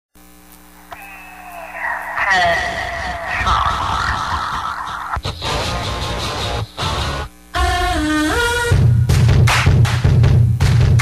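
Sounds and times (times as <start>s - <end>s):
electrical mains hum: 0.2s - 9.1s.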